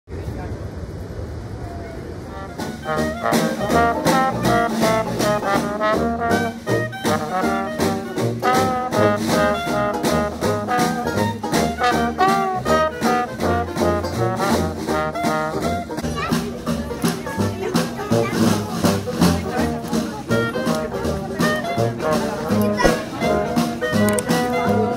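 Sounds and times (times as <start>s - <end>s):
trumpet melody: 2.2s - 16.0s, 18.0s - 24.9s
strummed banjo: 2.5s - 24.9s.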